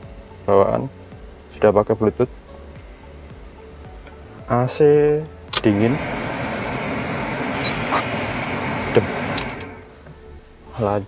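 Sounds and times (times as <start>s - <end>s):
air rushing from car vent: 5.6s - 10.1s.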